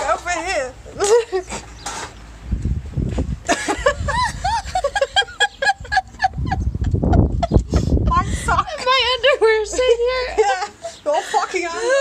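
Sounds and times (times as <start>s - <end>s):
woman laughing: 0.2s - 1.6s, 3.4s - 12.0s
low microphone rumble: 2.4s - 10.3s.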